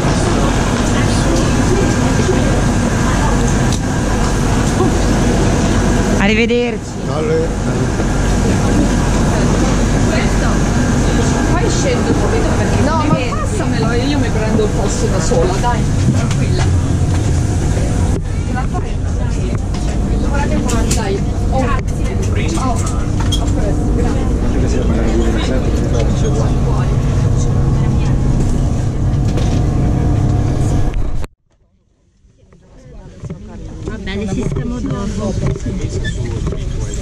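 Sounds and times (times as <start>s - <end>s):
steady low hum: 0.0s - 31.3s
passengers talking and moving: 0.0s - 37.0s.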